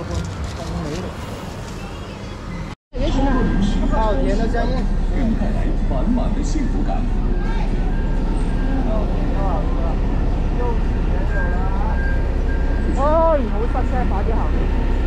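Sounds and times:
low traffic rumble: 0.0s - 15.0s
voices of vendors and passers-by: 0.0s - 15.0s.

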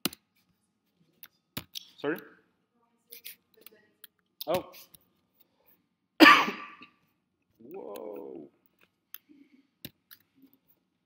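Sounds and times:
person coughing: 6.2s - 6.9s.

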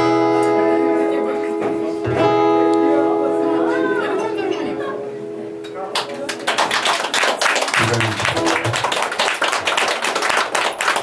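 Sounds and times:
guitar notes ringing: 0.0s - 6.5s
audience clapping: 5.9s - 11.0s.

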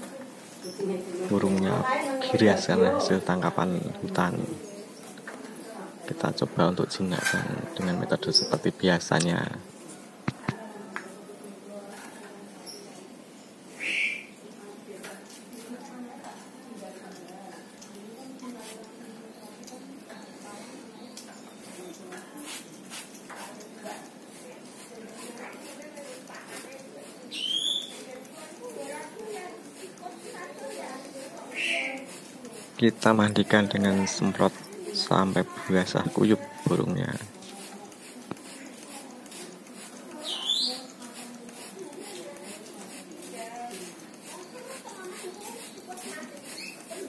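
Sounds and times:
faint voices: 0.0s - 47.0s
squeaky bird call: 13.8s - 14.3s, 27.3s - 28.0s, 40.2s - 40.9s.

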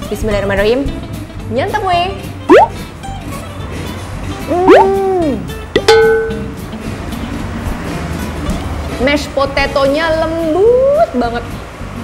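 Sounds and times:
background music: 0.0s - 12.0s
sound effect tone: 2.5s - 2.7s, 4.5s - 5.2s.

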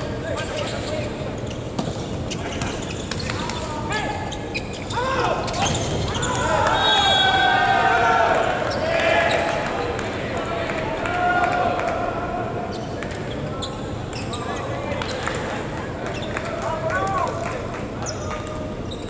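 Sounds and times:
shoe squeaks on court: 0.4s - 6.4s.

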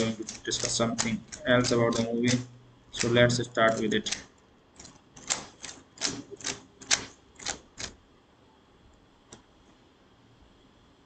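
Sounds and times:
keyboard keystrokes: 0.0s - 8.0s.

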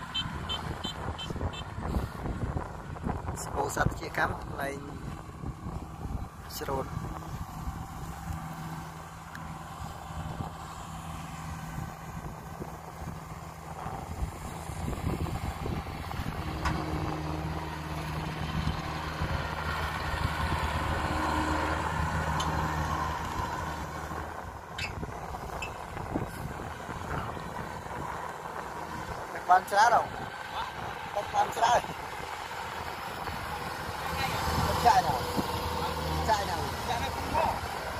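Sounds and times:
combine harvester engine hum: 0.0s - 37.9s.

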